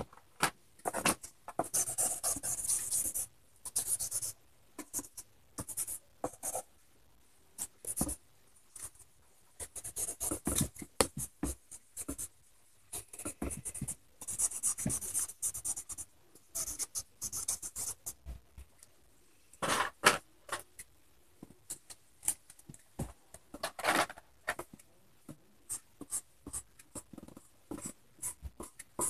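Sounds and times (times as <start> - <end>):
marker pen scribbling on paper: 0.8 - 6.7, 9.6 - 12.3, 12.9 - 18.2, 25.7 - 29.0.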